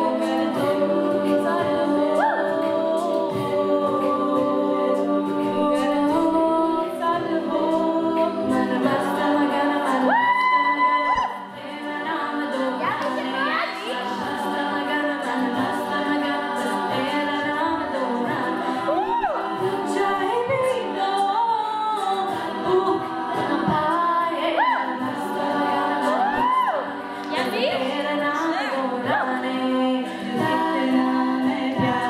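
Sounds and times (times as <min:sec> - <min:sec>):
women singing in close harmony: 0:00.0 - 0:32.0.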